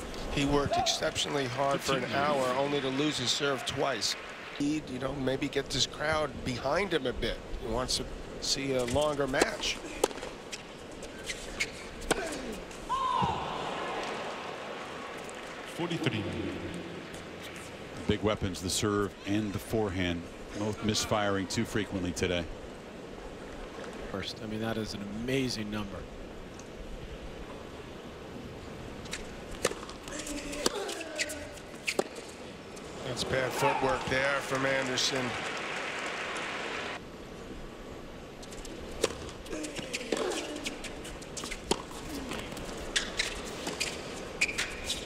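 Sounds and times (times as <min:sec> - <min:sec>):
hush of stadium crowd: 0:09.8 - 0:18.2, 0:32.2 - 0:37.0
crowd reacting: 0:12.9 - 0:15.0
tennis ball bouncing on hard court: 0:41.4 - 0:44.7.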